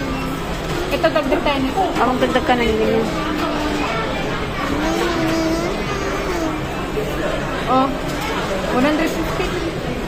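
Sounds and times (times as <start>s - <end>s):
indistinct voices and chatter: 0.0s - 10.0s
restaurant background din: 0.0s - 10.0s.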